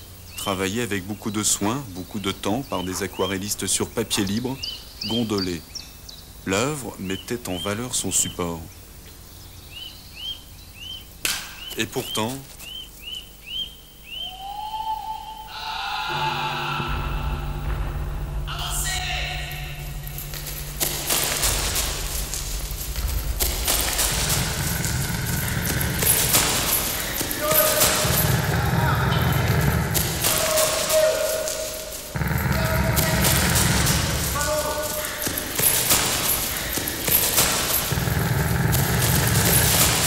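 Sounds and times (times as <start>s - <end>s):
short rising whistles: 14.1s - 15.8s
short held cries: 14.2s - 17.7s
deep low notes: 16.1s - 30.4s, 32.1s - 35.3s, 37.8s - 40.0s
rumble of rapid thuds: 16.9s - 30.4s, 32.2s - 40.0s.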